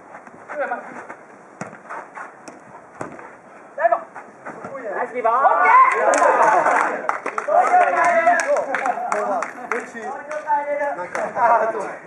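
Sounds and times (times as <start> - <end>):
ball kicked with sharp thud: 1.6 - 1.8, 2.4 - 3.2.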